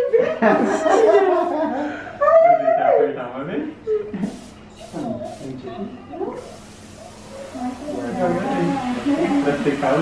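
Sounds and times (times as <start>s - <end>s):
air syringe hissing: 4.2s - 5.7s, 6.3s - 10.0s.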